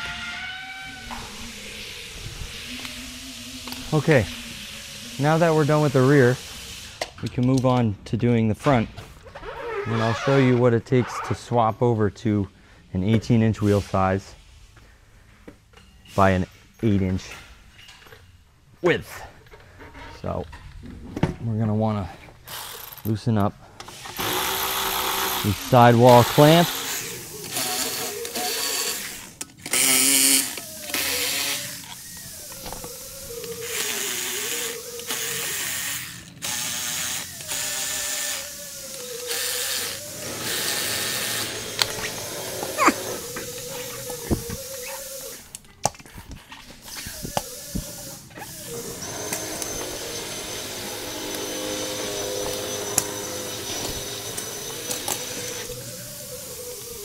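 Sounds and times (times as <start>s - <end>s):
power drill running in bursts: 22.5s - 23.0s, 23.9s - 45.5s, 47.3s - 57.0s.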